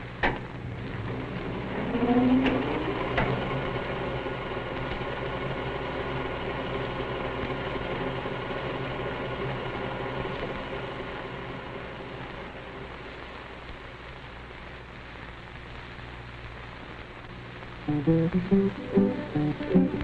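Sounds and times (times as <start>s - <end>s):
projector whirring and humming: 0.0s - 20.0s.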